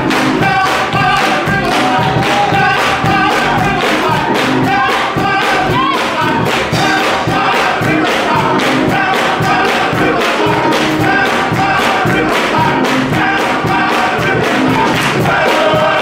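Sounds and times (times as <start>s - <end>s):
hand clapping: 0.0s - 16.0s
men's gospel choir singing: 0.0s - 16.0s.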